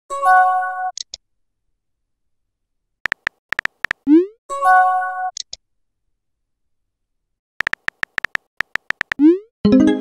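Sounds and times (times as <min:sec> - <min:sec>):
keyboard typing clicks: 0:03.0 - 0:04.1, 0:07.6 - 0:09.4.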